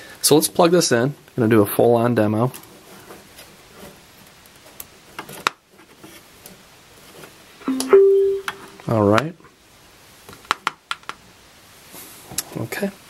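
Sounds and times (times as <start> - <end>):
amplifier power-up beeps: 7.7 - 8.8.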